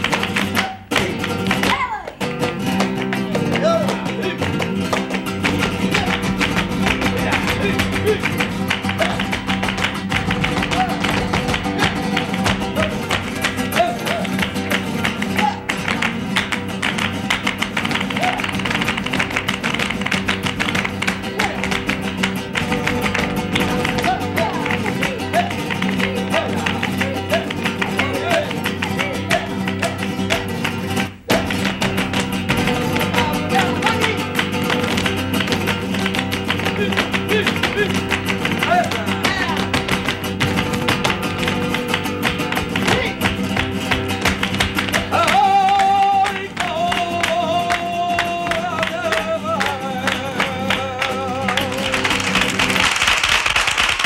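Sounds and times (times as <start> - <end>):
flamenco guitar playing: 0.0 - 54.0
people clapping: 0.0 - 54.0
percussive dance footwork: 0.0 - 54.0.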